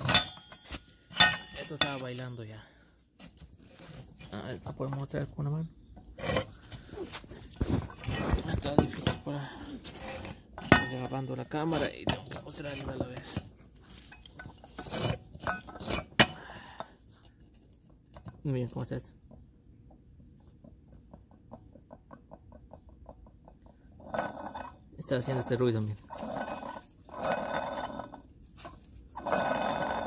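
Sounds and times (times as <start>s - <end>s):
water pump bearings grinding: 6.1s - 16.8s, 23.8s - 30.0s.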